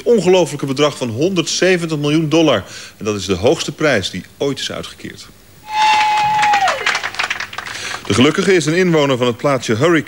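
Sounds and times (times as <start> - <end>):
high tone sliding down: 5.6 - 6.7
audience clapping: 5.7 - 8.4.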